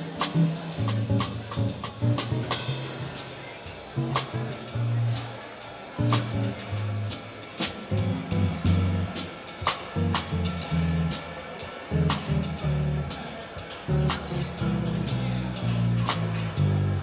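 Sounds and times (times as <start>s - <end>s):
drum kit cymbal and snare: 0.0s - 17.0s
electric bass line: 7.9s - 9.2s, 11.9s - 13.1s, 13.9s - 17.0s.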